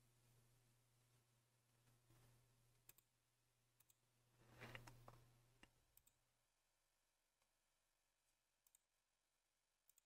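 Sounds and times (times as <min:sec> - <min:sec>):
faint low hum: 0:00.0 - 0:10.0
computer mouse clicks: 0:02.8 - 0:03.1, 0:03.8 - 0:04.0, 0:04.6 - 0:06.2, 0:08.6 - 0:08.9.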